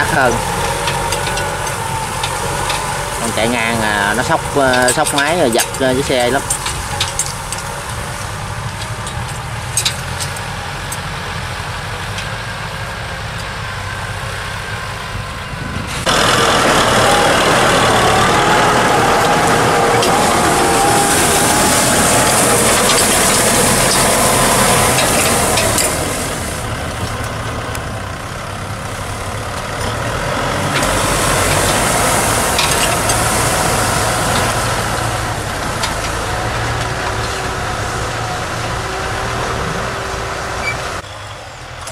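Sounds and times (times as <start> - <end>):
tractor diesel engine under load: 0.0 - 41.9
loud rushing noise: 15.5 - 41.0.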